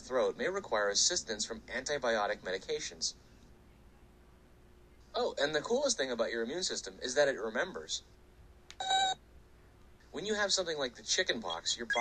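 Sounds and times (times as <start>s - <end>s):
short electronic beep: 8.8s - 9.2s.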